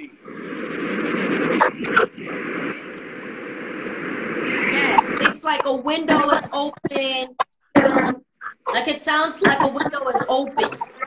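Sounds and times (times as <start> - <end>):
steady noise: 0.0 - 11.0
garbled voice over video call: 4.7 - 11.0.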